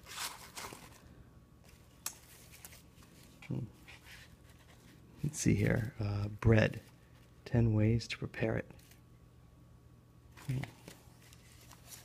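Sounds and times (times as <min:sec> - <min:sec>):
paper and cardboard handling: 0:00.0 - 0:01.1, 0:01.7 - 0:06.0, 0:10.4 - 0:12.0.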